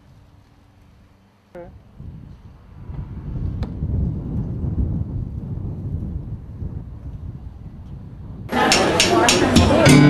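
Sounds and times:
wind buffeting microphone: 1.8 - 9.8.

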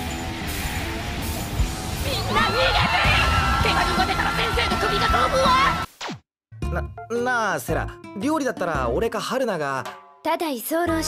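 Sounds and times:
background music: 0.0 - 5.9, 6.5 - 11.0
people shouting and screaming: 2.0 - 5.9.

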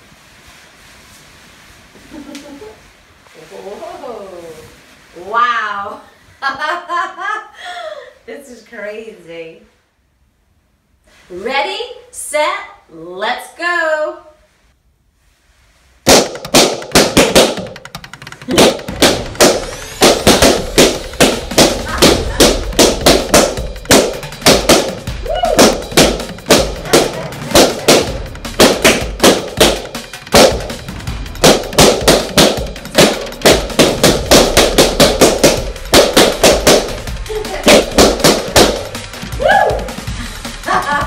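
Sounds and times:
balloons popping: 16.0 - 40.8.

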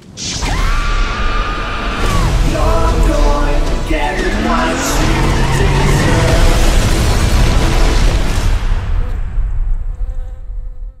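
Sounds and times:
explosion rumble: 0.0 - 10.7
bee buzzing: 9.8 - 11.0.

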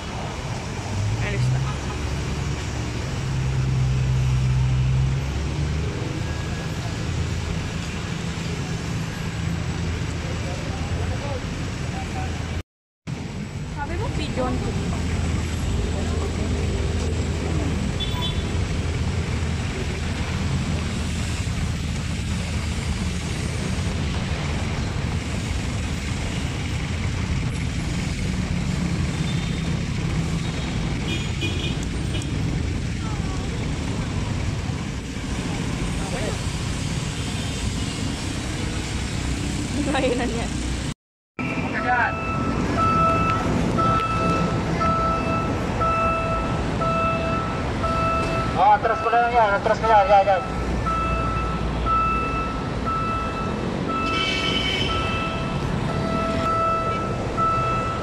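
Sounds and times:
diesel train rumble: 0.0 - 40.9
road traffic rumble: 0.0 - 58.0
crossing warning beeps: 5.9 - 7.6, 41.4 - 58.0.

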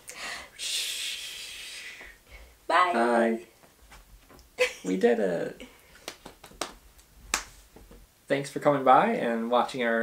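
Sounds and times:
hand claps: 6.0 - 7.6.

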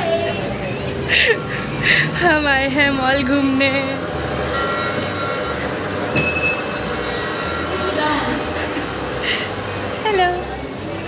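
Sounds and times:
low mall hum: 0.0 - 11.0
held electronic tones: 4.4 - 8.6
high beep: 4.5 - 8.4.

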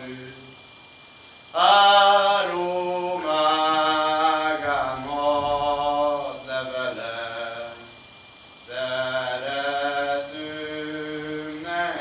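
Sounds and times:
man singing unaccompanied: 0.0 - 0.6, 1.5 - 12.0.

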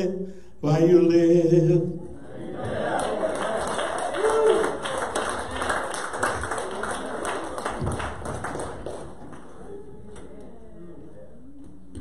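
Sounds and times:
small group clapping: 2.6 - 9.7.

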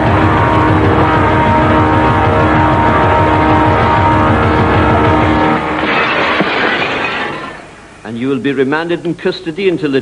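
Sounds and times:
van engine droning: 0.0 - 6.1.

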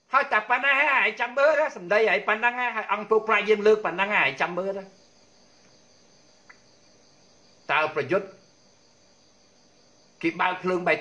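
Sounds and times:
faint high-pitched whine: 0.0 - 11.0
man talking: 0.1 - 5.0, 7.7 - 8.4, 10.2 - 11.0.

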